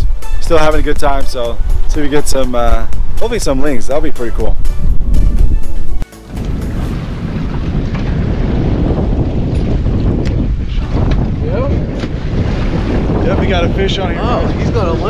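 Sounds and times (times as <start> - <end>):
wind noise: 0.0 - 15.0
wind rumble on microphone: 0.0 - 15.0.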